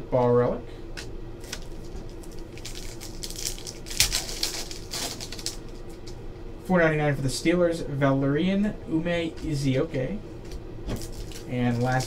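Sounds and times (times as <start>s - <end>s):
sharp foil crackle: 1.4s - 5.8s, 11.0s - 12.0s
cards rustling: 1.4s - 5.9s, 10.9s - 12.0s
foil wrapper crinkling and tearing: 1.4s - 6.0s, 11.0s - 12.0s.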